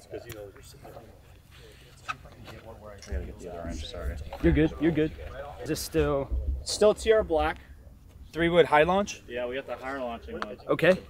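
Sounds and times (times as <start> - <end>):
faint voices outdoors: 0.0 - 11.0.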